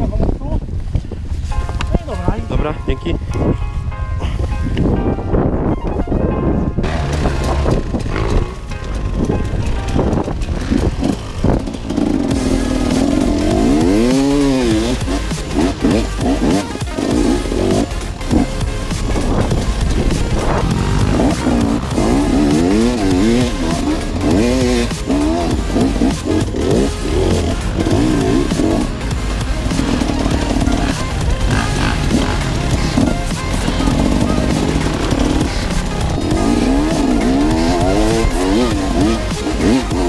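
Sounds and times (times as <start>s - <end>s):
motorcycle engine revving: 6.8s - 40.0s.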